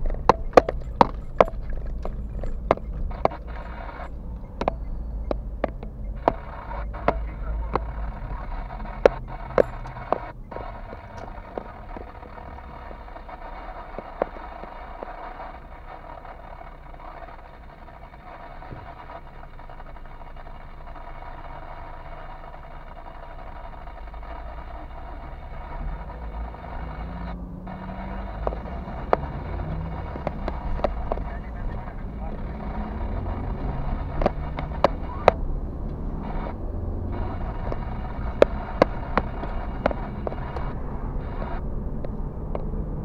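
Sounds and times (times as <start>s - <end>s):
car engine: 0.0s - 43.0s
sharp clicks: 0.0s - 43.0s.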